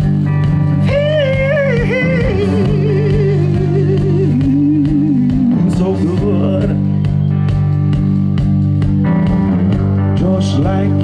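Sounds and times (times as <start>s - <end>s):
bass guitar: 0.0s - 11.0s
electric guitar: 0.0s - 11.0s
steady drum beat: 0.0s - 11.0s.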